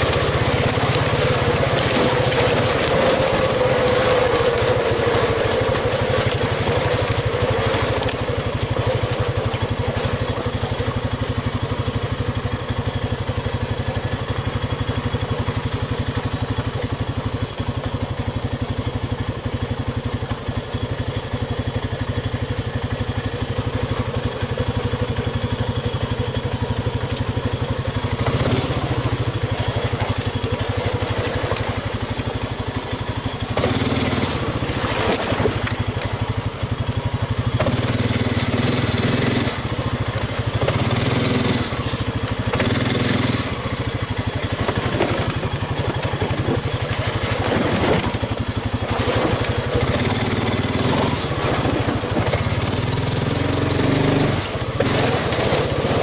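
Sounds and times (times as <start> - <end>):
quad bike engine revving: 0.0 - 56.0.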